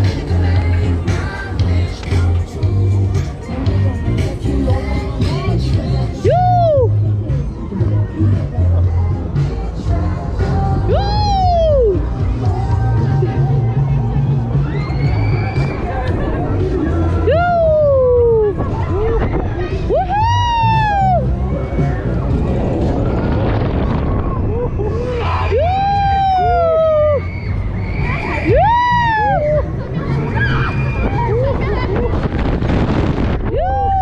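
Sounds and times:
fairground ride music: 0.0 - 34.0.

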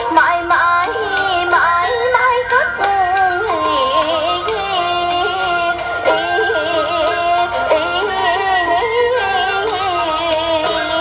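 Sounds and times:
instrumental accompaniment: 0.0 - 11.0
person singing ornamented melody: 0.0 - 11.0.

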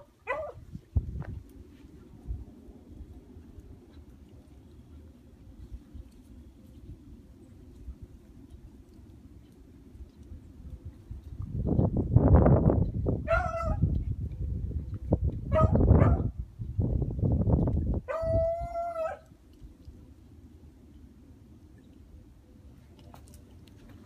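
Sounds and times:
wind rumbling on microphone: 0.0 - 20.4.

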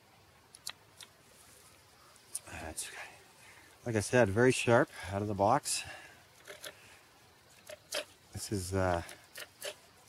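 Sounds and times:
knife scraping wood: 6.4 - 6.8, 7.6 - 8.2, 8.9 - 9.8.

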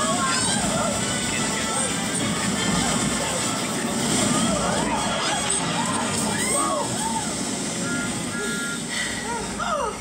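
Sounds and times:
rush of noise: 0.0 - 10.0
gliding voice-like cries: 5.2 - 7.5
short beeping tones: 7.8 - 8.9.

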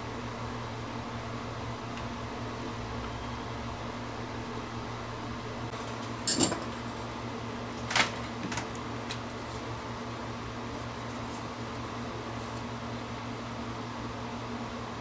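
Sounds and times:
steady electrical hum: 0.0 - 15.0
tools clinking on workbench: 5.8 - 6.8.

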